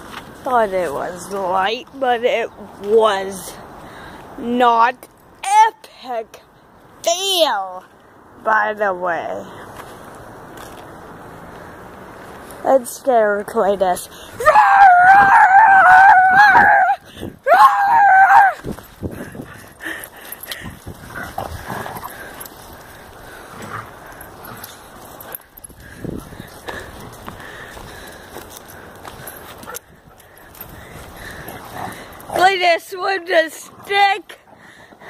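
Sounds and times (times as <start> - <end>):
dogs play-fighting on grass: 0.0 - 35.0
loud high wavering cry: 14.4 - 18.7.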